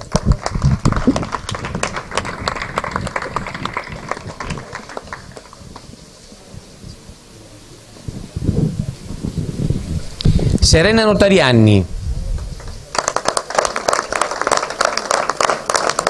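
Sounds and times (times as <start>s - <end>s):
audience applauding: 0.0s - 6.4s, 12.6s - 16.0s.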